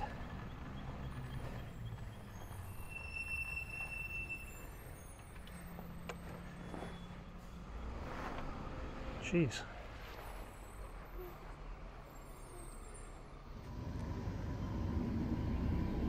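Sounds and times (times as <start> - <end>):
low engine rumble: 0.0 - 8.8.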